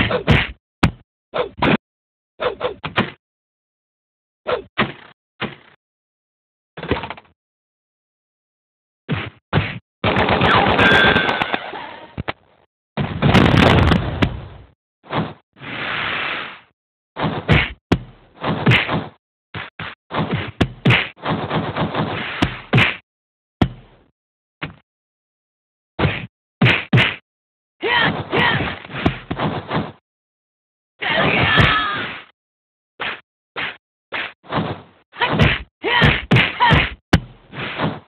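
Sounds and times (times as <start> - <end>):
cartoon whacks: 9.1 - 9.8, 18.4 - 23.0, 26.0 - 27.2.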